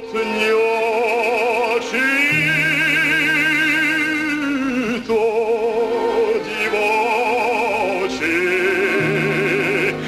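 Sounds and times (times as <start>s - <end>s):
man singing operatic note: 0.0s - 10.0s.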